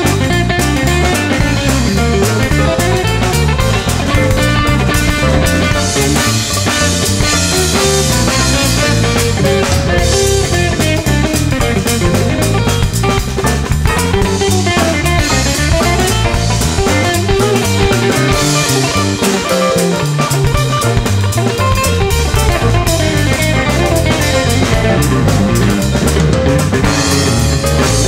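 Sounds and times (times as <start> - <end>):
bass line: 0.0 - 28.0
drum kit beat: 0.0 - 28.0
electric guitar: 0.0 - 28.0.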